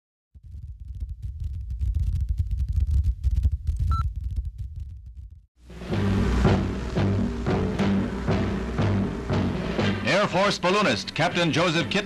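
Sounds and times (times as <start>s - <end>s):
faint crackle: 0.4s - 5.4s.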